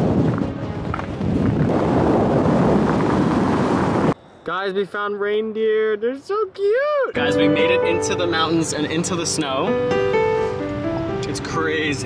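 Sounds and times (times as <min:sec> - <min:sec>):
wind blowing on microphone: 0:00.0 - 0:04.2.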